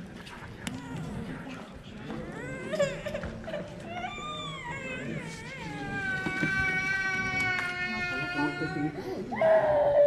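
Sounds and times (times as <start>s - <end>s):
small child crying: 3.9s - 10.0s.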